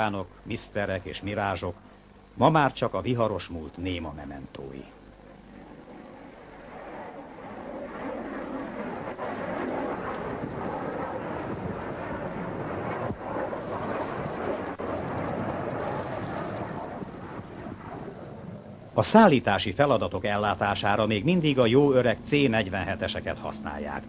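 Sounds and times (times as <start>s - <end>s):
jet aircraft passing: 2.5s - 24.0s.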